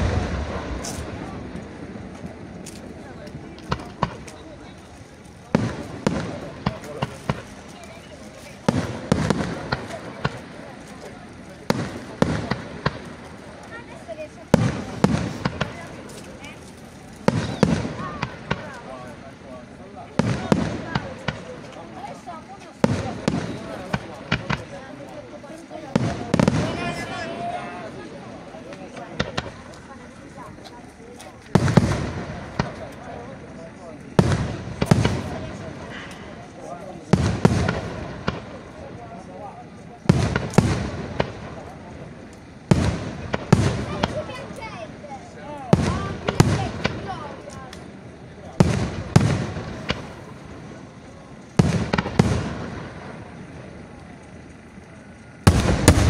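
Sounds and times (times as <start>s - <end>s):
firework shells bursting: 0.0s - 25.1s, 40.0s - 56.0s.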